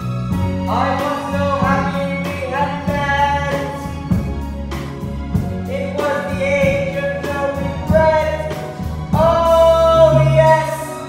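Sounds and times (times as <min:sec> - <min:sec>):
person singing with accompaniment: 0:00.0 - 0:11.0.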